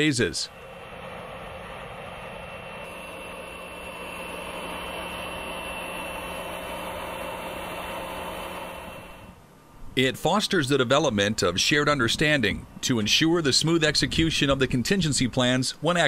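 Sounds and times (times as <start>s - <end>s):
engine running hum: 0.0s - 9.4s
faint high whine: 0.0s - 16.0s.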